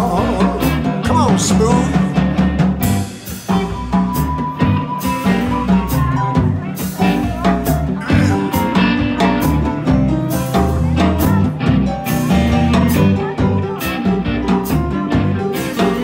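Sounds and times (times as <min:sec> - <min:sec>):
electric blues band playing: 0:00.0 - 0:16.0.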